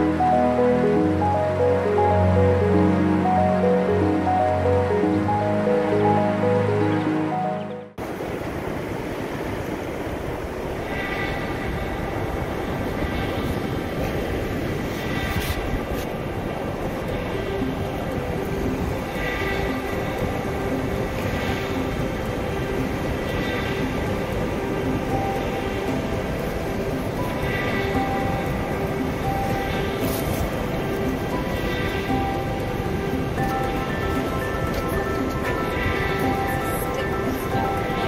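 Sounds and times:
wind: 0.0 - 38.0
faint background music: 16.3 - 38.0.

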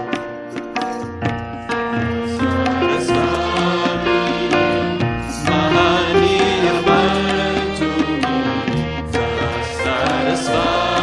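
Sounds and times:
drum strokes: 0.0 - 11.0
sustained instrumental accompaniment: 0.0 - 11.0
group singing devotional song: 2.0 - 11.0.

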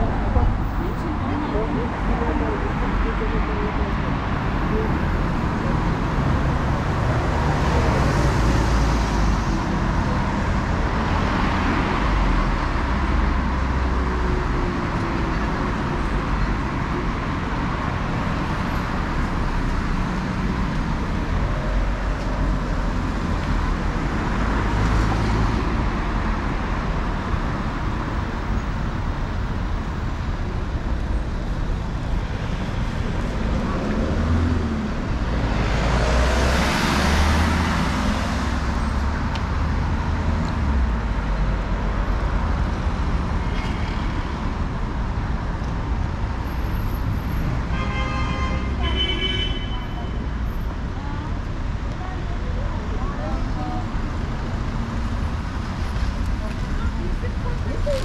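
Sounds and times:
traffic rumble: 0.0 - 58.0.

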